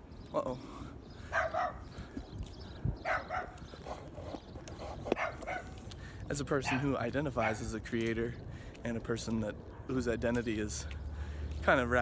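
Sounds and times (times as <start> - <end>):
wind rumbling on microphone: 1.0 - 12.0
dog barking: 1.3 - 1.9, 3.0 - 3.6, 5.2 - 5.8, 6.6 - 7.6.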